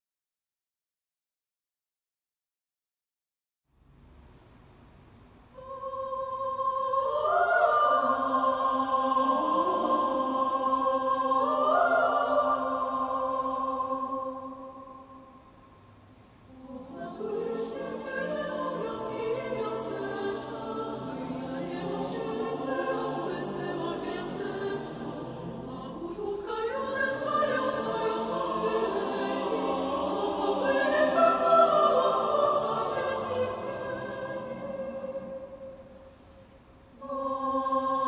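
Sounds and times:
mixed choir singing a carol: 5.6s - 15.4s, 16.5s - 36.3s, 37.0s - 38.0s.

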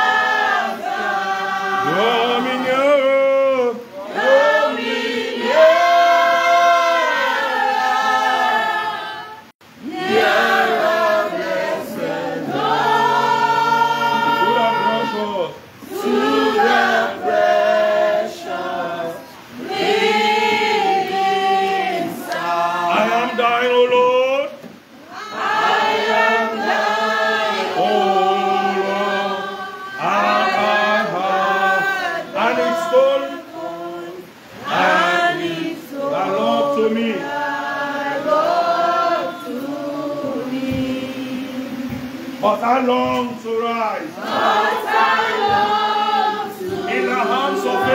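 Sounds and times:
congregation singing a worship song: 0.0s - 47.9s.

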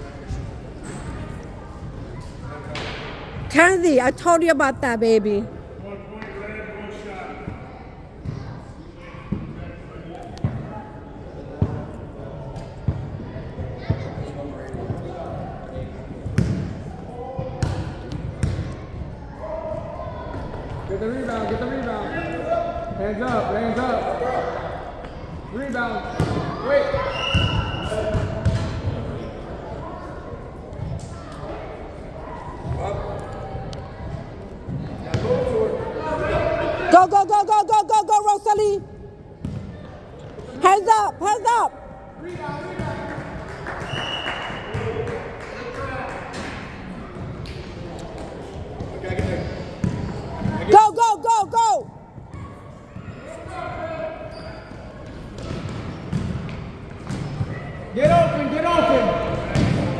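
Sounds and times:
distant voices in echoing hall: 0.0s - 59.9s.

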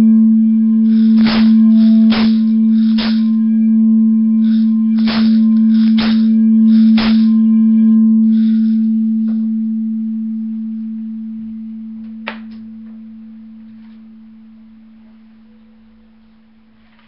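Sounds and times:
singing bowl ringing: 0.0s - 16.8s.

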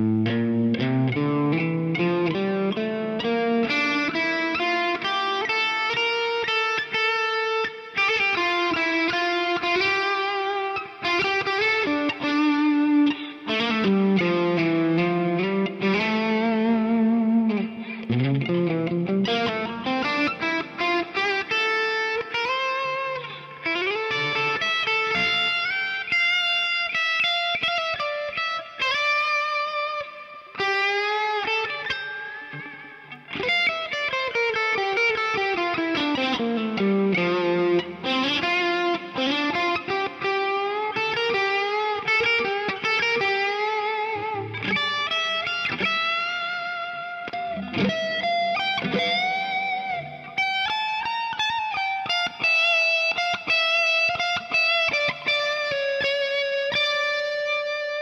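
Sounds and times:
electric guitar solo: 0.0s - 58.0s.

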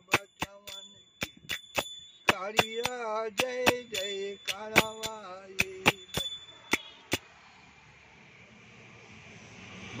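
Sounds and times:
metallic percussion strikes: 0.0s - 7.2s.

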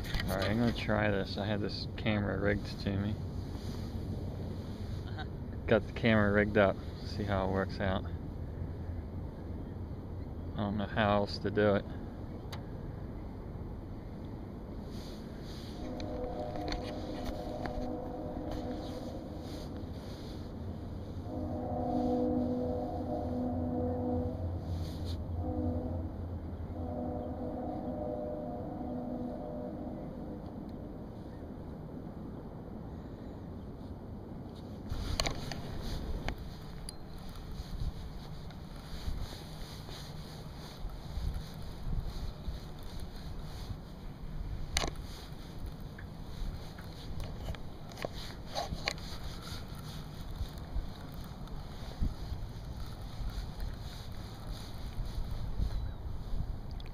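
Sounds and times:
train horn chord: 14.9s - 31.2s, 37.2s - 44.0s, 53.3s - 56.3s.

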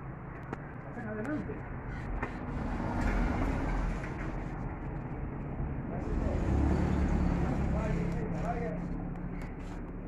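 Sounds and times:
cars driving past: 1.7s - 10.0s.

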